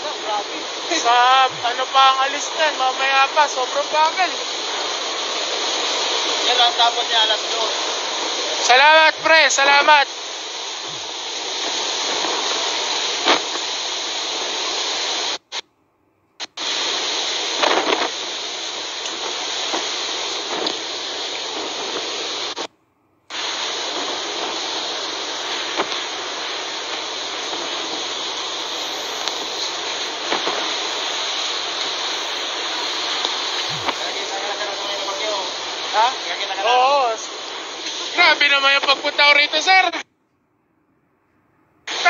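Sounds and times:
wind and driving rain: 23.6s - 36.5s.

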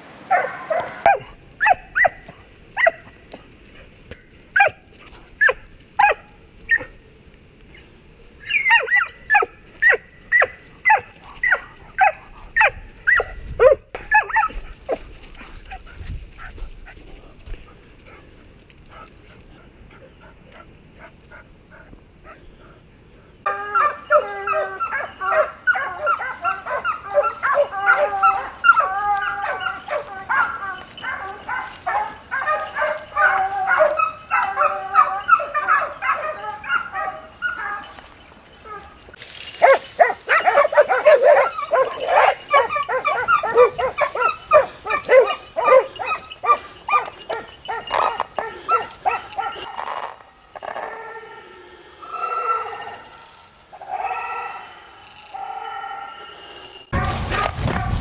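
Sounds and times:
dogs barking and yelping: 0.2s - 3.1s, 4.1s - 7.0s, 8.4s - 17.1s, 23.4s - 51.4s, 52.1s - 58.0s.

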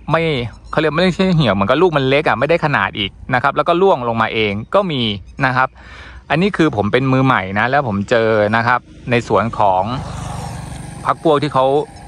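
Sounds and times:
small engine running: 7.1s - 12.0s.

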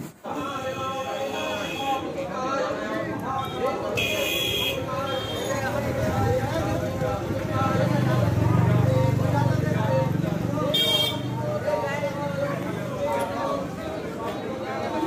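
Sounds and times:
street traffic: 0.0s - 15.0s
voices: 0.0s - 15.0s
vehicle horn toots: 0.4s - 2.0s, 3.4s - 5.7s, 10.7s - 11.3s
vehicle engine passing by: 5.6s - 10.7s.

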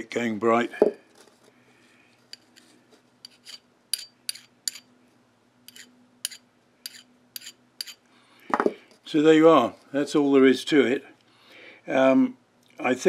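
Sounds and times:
hand file stroking steel: 3.2s - 4.8s, 5.7s - 8.0s.

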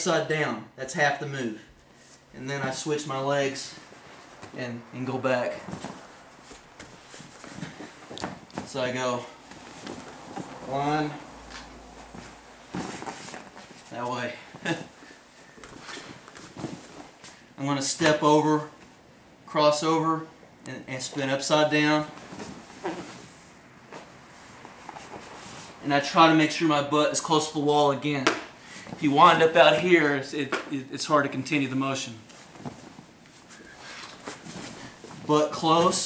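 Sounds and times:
rustling cloth: 1.8s - 17.6s, 22.0s - 25.8s, 32.1s - 36.0s.

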